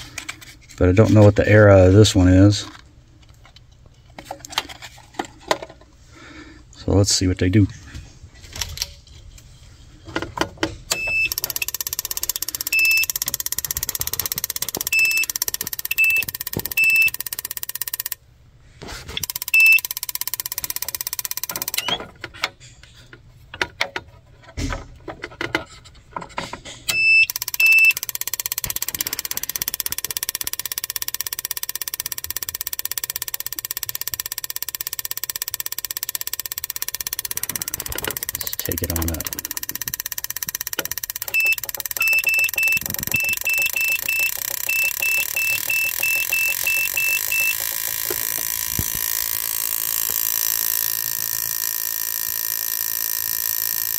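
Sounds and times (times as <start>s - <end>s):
short electronic beeps: 10.9s - 11.7s, 12.6s - 13.2s, 14.9s - 17.3s, 19.5s - 19.9s, 26.9s - 28.0s, 41.2s - 48.3s.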